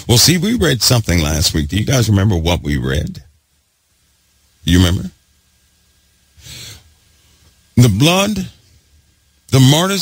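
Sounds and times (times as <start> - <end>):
man breathing: 6.4 - 7.5.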